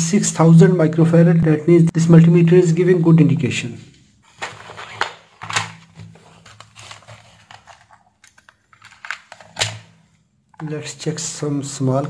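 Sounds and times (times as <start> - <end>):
plastic box moved: 4.2 - 9.9.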